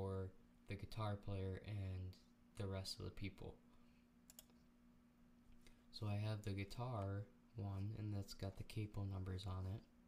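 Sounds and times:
faint steady hum: 0.0s - 10.0s
computer mouse clicks: 4.3s - 4.6s.

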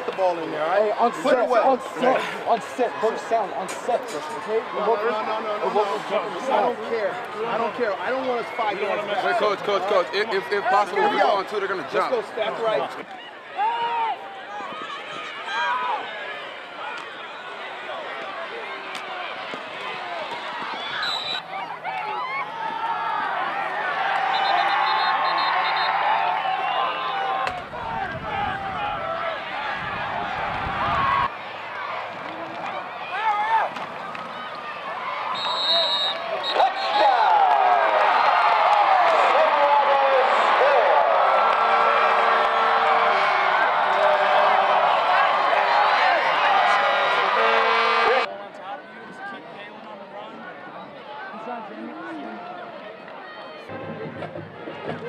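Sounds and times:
crowd cheering and shouting: 0.0s - 55.0s.

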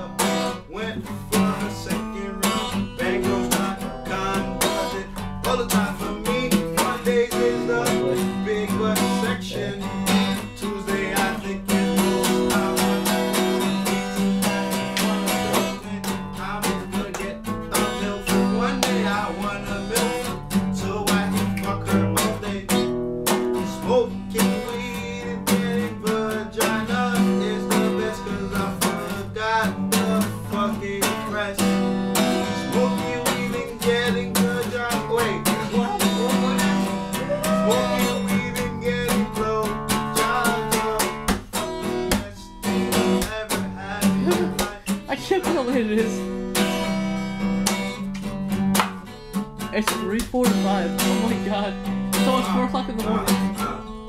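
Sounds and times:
acoustic guitar chords and notes: 0.0s - 54.0s.

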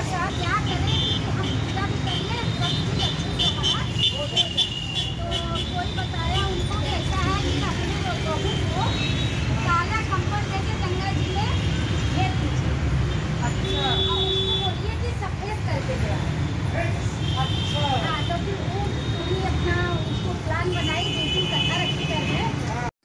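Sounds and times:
women chattering: 0.0s - 16.5s, 17.2s - 22.8s.

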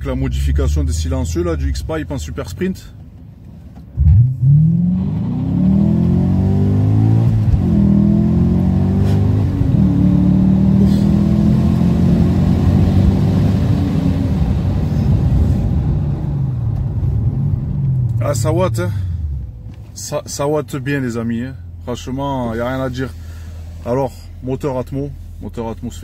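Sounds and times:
car engine accelerating hard: 4.0s - 19.6s.

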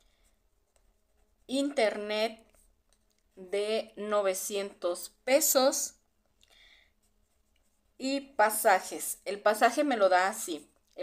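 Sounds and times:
marker stroke on paper: 0.0s - 6.1s, 6.9s - 11.0s.

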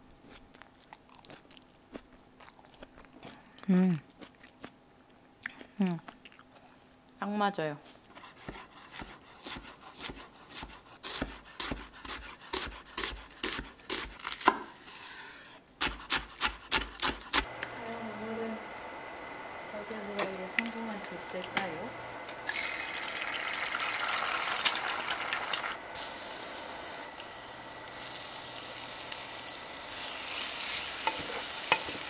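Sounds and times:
person chewing food: 0.1s - 7.0s
knife chopping onion on wood: 8.2s - 14.8s, 15.8s - 17.5s.

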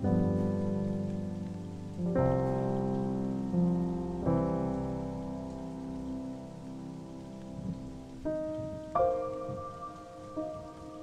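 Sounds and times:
rain on a hard surface: 0.0s - 11.0s
slow solo piano: 0.0s - 11.0s.

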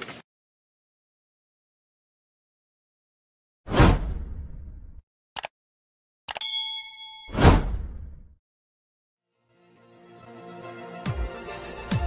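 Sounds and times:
bell-like ding: 6.4s - 7.5s.

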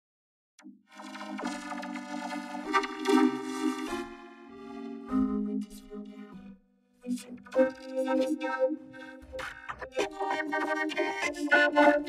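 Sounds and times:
vocoded voice synth chords: 1.0s - 12.0s.

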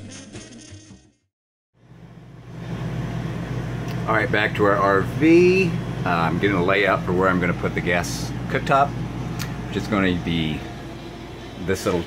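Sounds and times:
low mechanical hum: 1.8s - 12.0s.

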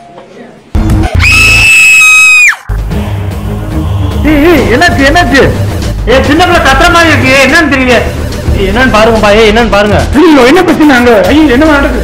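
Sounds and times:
loud high-pitched scream: 1.2s - 2.7s
deep heavy background music: 2.7s - 12.0s.

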